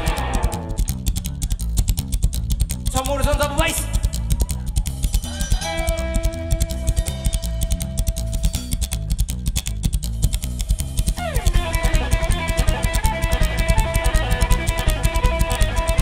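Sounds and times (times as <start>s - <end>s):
electric guitar lead notes: 0.0s - 2.1s, 5.1s - 16.0s
drum kit beat: 0.0s - 16.0s
slapped upright double bass: 0.0s - 16.0s.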